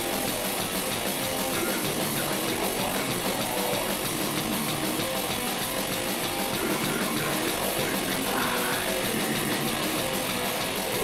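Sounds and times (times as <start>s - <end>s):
drum kit played hard: 0.0s - 11.0s
electric guitar: 0.0s - 11.0s.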